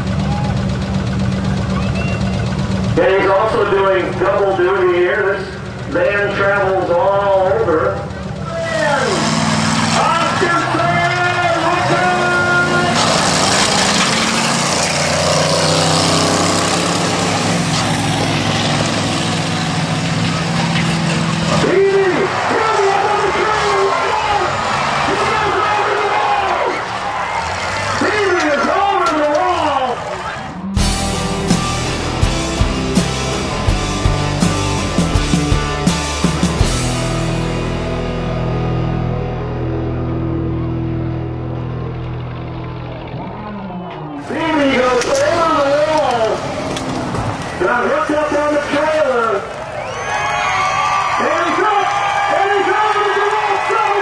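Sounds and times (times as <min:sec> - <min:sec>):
engines running: 0:00.0 - 0:54.0
van crashing and scraping on asphalt: 0:09.2 - 0:29.6.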